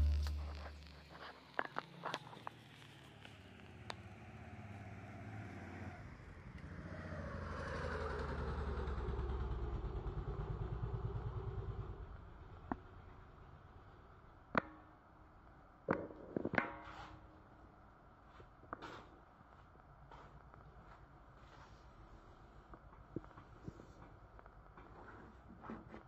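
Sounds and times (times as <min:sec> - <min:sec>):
passing vehicle engine: 0:03.7 - 0:12.6.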